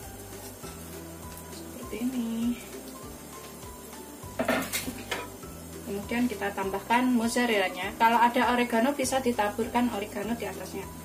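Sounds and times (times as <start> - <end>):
background music: 0.0 - 11.0
kitchenware clattering on frying pan: 4.3 - 5.4.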